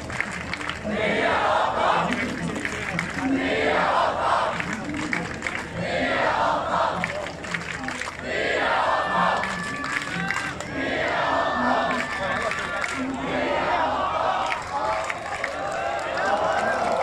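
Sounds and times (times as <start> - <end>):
crowd murmur: 0.0 - 17.0
crowd chanting in unison: 0.8 - 7.3, 8.2 - 17.0.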